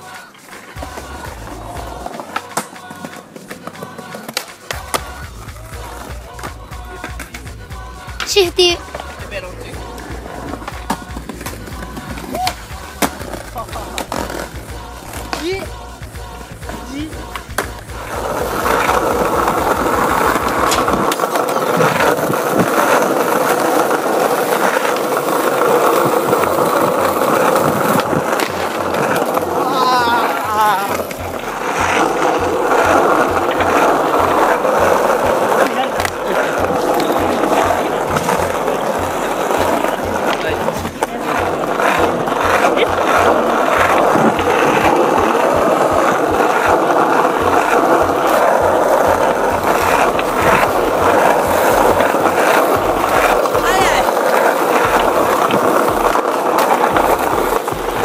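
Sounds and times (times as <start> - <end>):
skateboard clacks: 0.0 - 58.0
skateboard wheels rolling on paving: 0.0 - 58.0.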